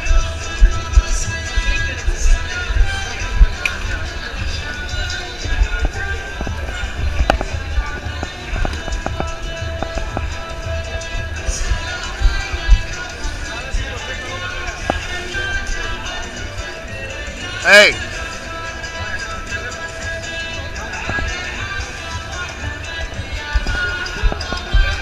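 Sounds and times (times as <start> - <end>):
crowd babble: 0.0 - 25.0
music playing: 0.0 - 25.0.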